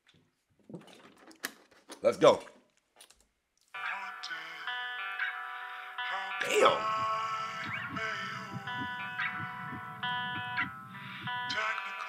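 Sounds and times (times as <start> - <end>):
sustained synth chord: 3.8 - 11.6
soft low pulses: 6.6 - 11.5.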